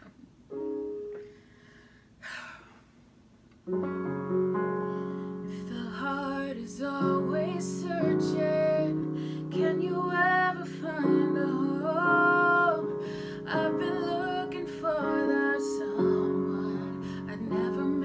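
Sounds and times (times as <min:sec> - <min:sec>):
digital piano chords: 0:00.0 - 0:01.6, 0:03.6 - 0:18.0
woman singing: 0:05.5 - 0:18.0.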